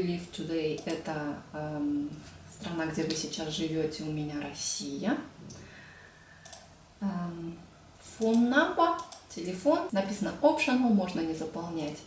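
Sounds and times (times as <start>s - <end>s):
computer mouse clicks: 0.7s - 1.0s, 6.4s - 6.7s, 8.2s - 9.3s.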